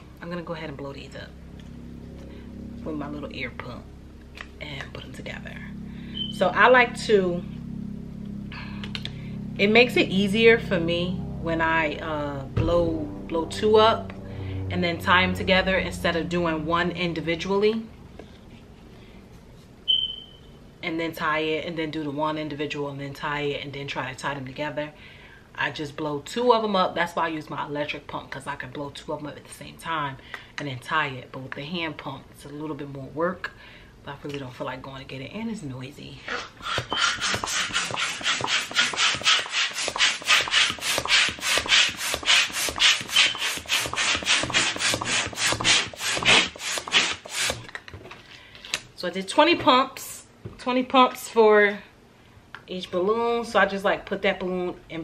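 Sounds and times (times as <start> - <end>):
short high-pitched beep: 6.1 - 6.4, 19.9 - 20.5
balloon pump strokes: 36.3 - 47.7.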